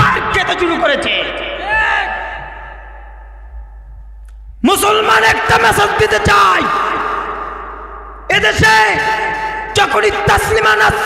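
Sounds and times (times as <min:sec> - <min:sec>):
man shouting through loudspeaker: 0:00.0 - 0:02.8, 0:04.6 - 0:07.6, 0:08.3 - 0:11.0
steady low hum: 0:01.2 - 0:09.8.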